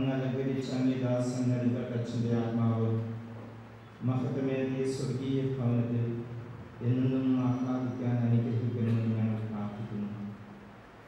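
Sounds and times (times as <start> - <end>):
man chanting a prayer: 0.0 - 3.2, 4.0 - 10.4.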